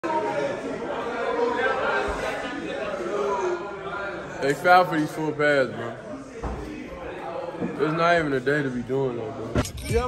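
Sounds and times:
indistinct voices in echoing room: 0.0 - 10.0.

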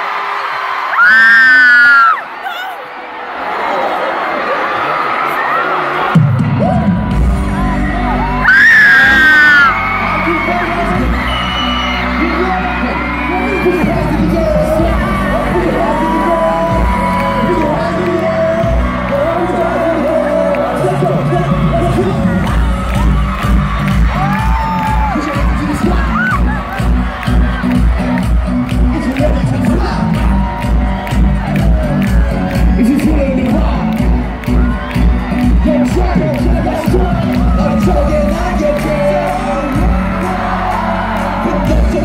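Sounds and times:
crowd screaming: 0.0 - 42.0
loud high scream: 0.9 - 2.8, 8.3 - 10.4
pop music with heavy bass: 6.1 - 42.0.

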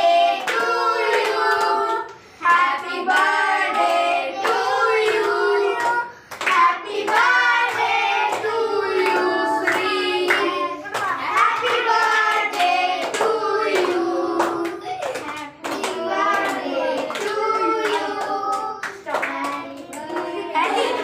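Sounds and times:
group of children singing a song: 0.0 - 21.0
children clapping in time: 4.4 - 21.0.

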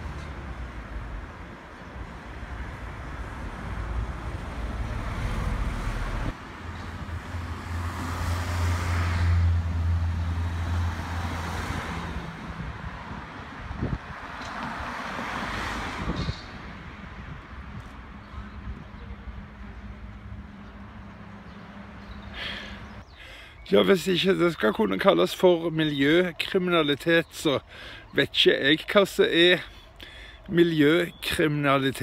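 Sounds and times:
vehicle passing with engine drone: 0.0 - 23.2.

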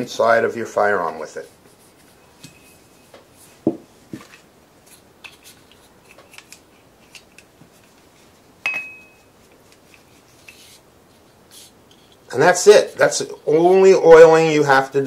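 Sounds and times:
soft knocks and rubbing: 1.1 - 4.4.

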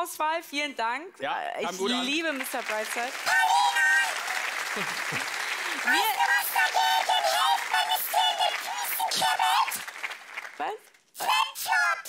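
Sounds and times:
audience applauding and cheering: 1.9 - 11.9
raised voices calling out: 3.1 - 4.4, 5.6 - 9.8, 11.2 - 12.0.

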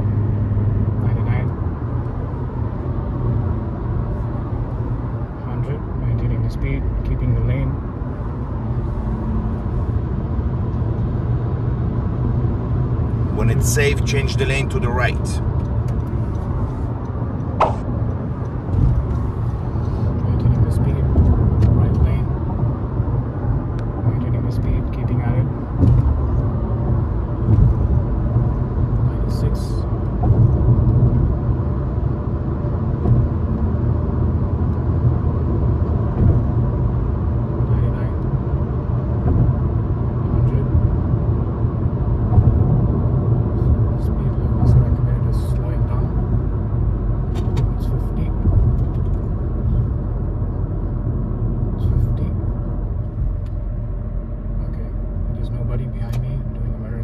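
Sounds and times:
car road noise rumble: 0.0 - 57.0.

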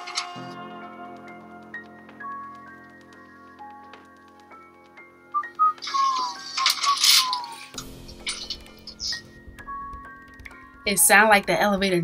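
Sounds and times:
sustained music drone: 0.0 - 11.7.

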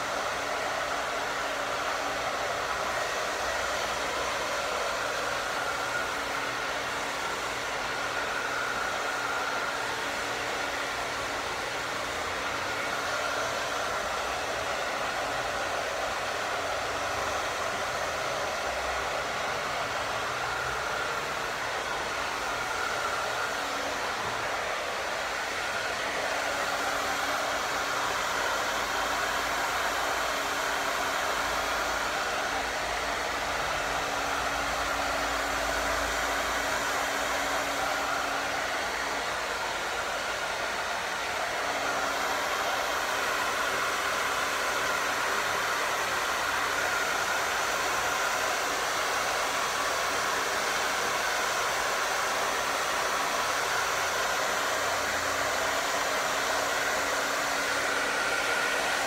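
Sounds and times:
hair dryer blowing: 0.0 - 59.0.

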